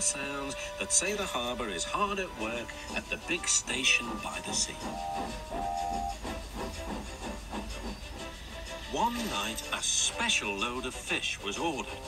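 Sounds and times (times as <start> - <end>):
hissing steam: 0.0 - 12.0
locomotive puffs: 0.0 - 12.0
soft background music: 0.0 - 12.0
steam whistle two-note tone: 4.8 - 6.4.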